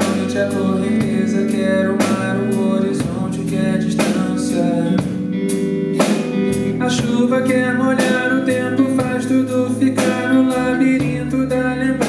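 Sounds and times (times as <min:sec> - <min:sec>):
live band music: 0:00.0 - 0:12.0.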